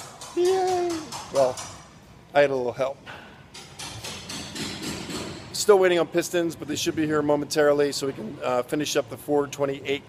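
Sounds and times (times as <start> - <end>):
workshop background noise: 0.0 - 10.0.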